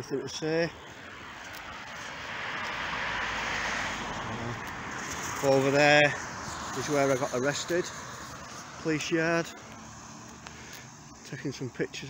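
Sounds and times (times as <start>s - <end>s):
vehicle passing close by: 1.0s - 11.2s.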